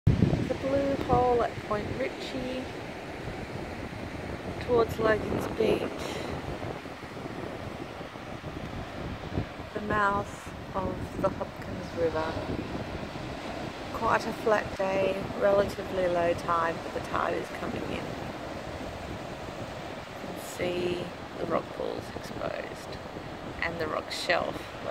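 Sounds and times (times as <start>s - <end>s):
ocean surf breaking: 0.1s - 24.9s
wind buffeting microphone: 0.1s - 24.9s.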